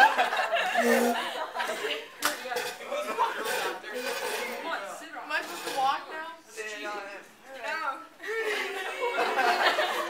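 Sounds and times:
people talking indistinctly: 0.7 - 9.6.

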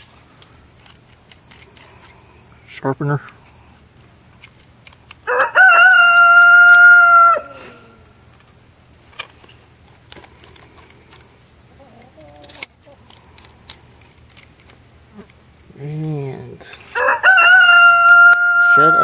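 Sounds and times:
rooster crowing: 5.2 - 8.1, 16.9 - 19.0.

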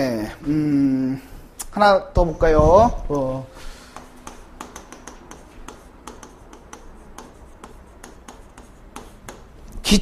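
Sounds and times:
chalk tapping and scraping on board: 3.2 - 9.9.

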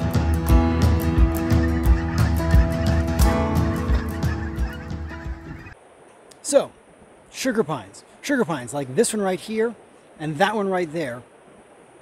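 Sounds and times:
acoustic guitar music: 0.0 - 5.8
flock of birds calling: 0.0 - 5.8.

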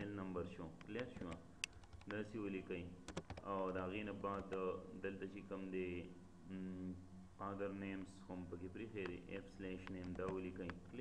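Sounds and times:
man speaking: 0.0 - 1.5, 2.1 - 11.0.

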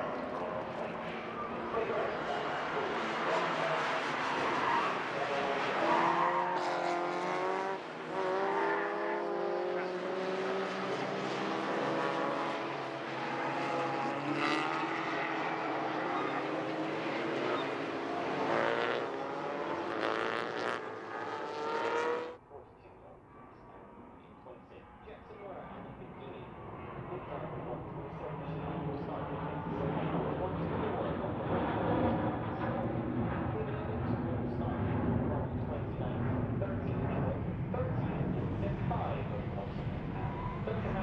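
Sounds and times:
race car engines revving: 0.0 - 22.4, 25.8 - 41.0
distant engine: 0.0 - 41.0.

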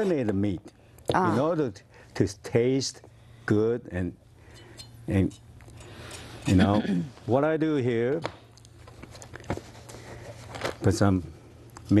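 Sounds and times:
low steady hum: 0.0 - 12.0
man speaking: 1.2 - 2.8, 6.5 - 8.1.

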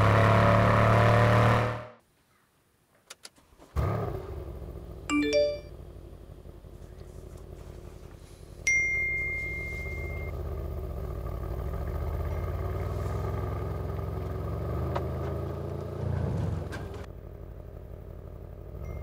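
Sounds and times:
car engine pulling away: 0.0 - 2.0, 3.4 - 19.0
high notification chime: 5.1 - 5.7.

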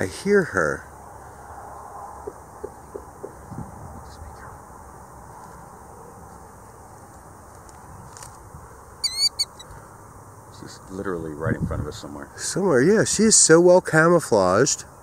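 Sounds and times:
faint bird calls: 9.0 - 10.0.

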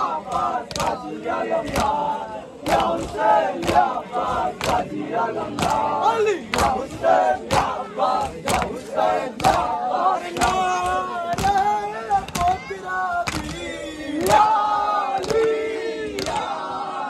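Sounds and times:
men chanting together: 0.0 - 17.0
hands slapping chests: 0.3 - 1.0, 1.6 - 2.0, 2.6 - 5.9, 6.5 - 14.5, 15.2 - 16.5.

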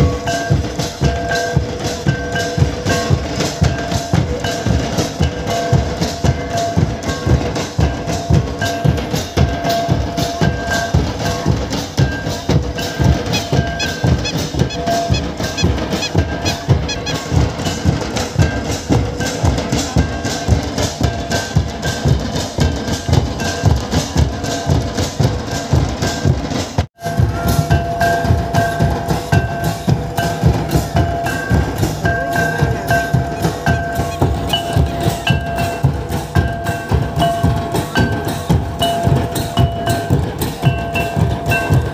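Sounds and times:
barrel drums beaten in fast rhythm: 0.0 - 41.9.

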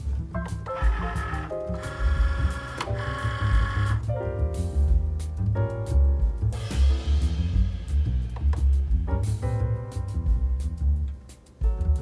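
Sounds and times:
background music with bass line: 0.0 - 12.0
cutting machine whirring: 0.8 - 4.0.

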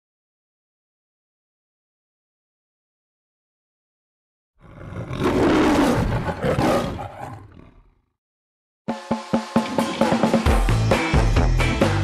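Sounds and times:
music with percussive beats: 8.9 - 12.0.

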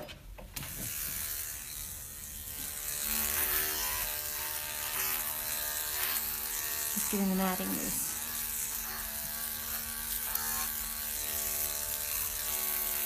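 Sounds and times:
electric clippers humming: 0.5 - 13.0.

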